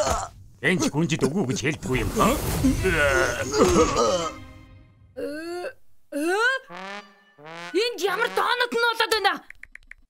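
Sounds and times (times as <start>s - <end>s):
cartoon voice moaning: 5.2s - 6.7s.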